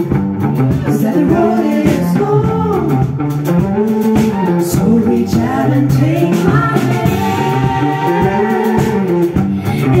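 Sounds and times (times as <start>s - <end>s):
live band with electric guitars: 0.0s - 10.0s.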